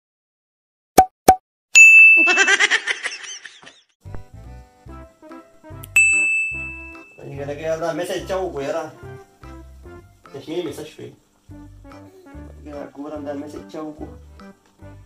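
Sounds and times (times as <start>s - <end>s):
bright ding: 1.8s - 2.5s, 6.0s - 7.3s
burst of laughter: 2.3s - 3.8s
music with steady bass beat: 11.5s - 12.7s.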